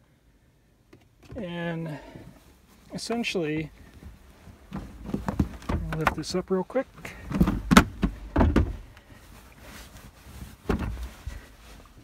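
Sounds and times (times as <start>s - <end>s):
seat cushion thumps and knocks: 4.7s - 6.2s, 7.3s - 8.9s, 10.6s - 11.2s.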